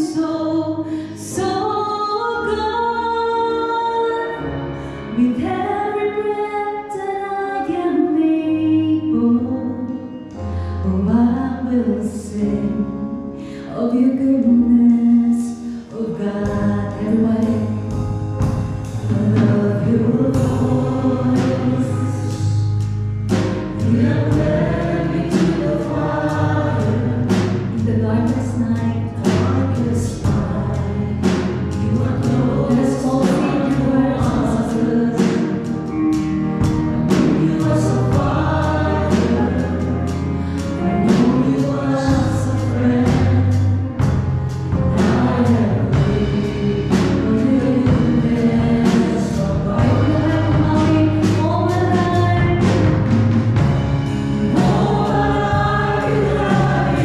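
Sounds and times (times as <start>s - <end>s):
steady bass: 7.7s - 57.0s
instrumental accompaniment: 16.2s - 57.0s
choir singing with band: 16.7s - 57.0s
sharp percussion hits: 52.4s - 57.0s.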